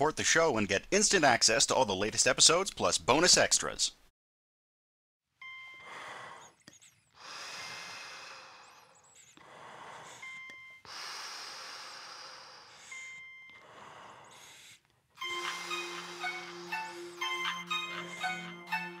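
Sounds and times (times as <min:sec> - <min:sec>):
person breathing heavily: 0:05.8 - 0:18.6
music: 0:15.2 - 0:19.0.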